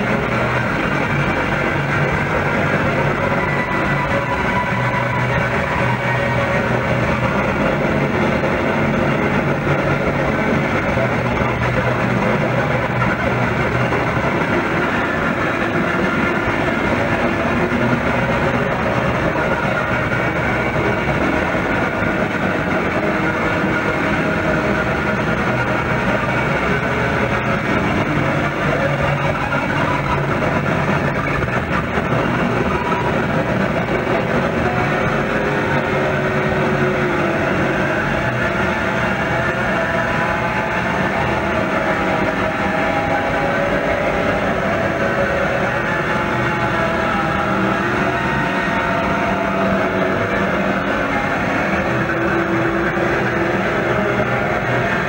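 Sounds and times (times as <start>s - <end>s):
distorted electric guitar: 0.0s - 55.0s.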